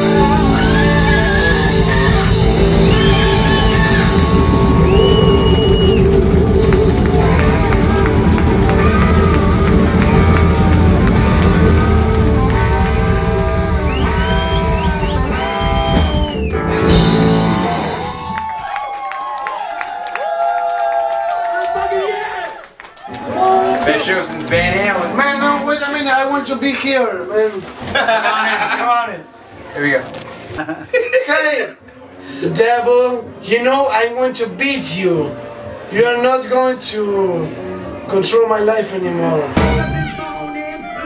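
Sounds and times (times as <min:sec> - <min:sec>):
rock and roll band playing: 0:00.0 - 0:18.8, 0:39.4 - 0:41.0
crowd voices and cheering: 0:00.0 - 0:26.6.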